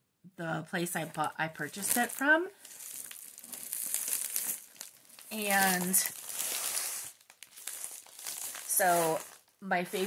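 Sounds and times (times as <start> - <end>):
fabric bag crinkling: 1.0 - 10.0.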